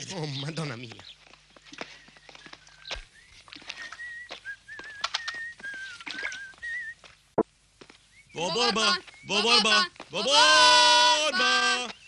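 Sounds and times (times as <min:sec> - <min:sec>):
man whistling a tune: 0:03.9 - 0:07.0.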